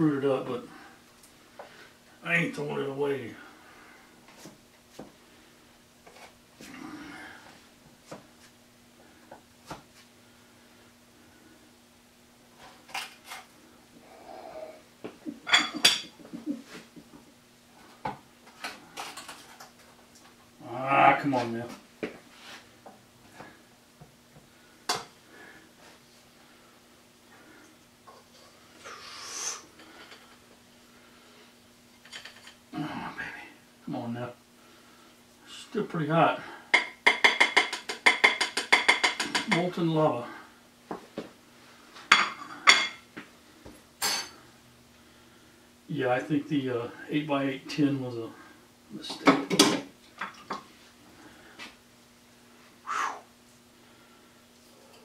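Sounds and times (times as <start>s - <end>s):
faint steady hum: 0.0s - 55.0s
ceramic plates clinking: 15.5s - 16.1s
spatula knocking in baking pan: 36.8s - 39.5s.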